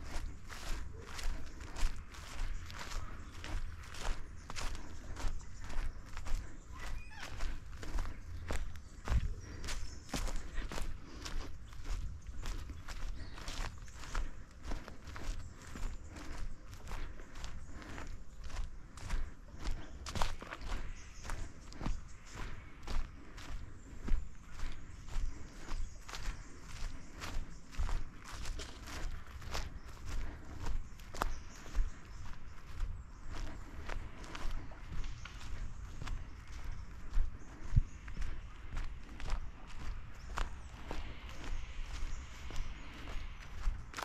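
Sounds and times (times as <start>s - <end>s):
footsteps on forest track: 0.0s - 44.0s.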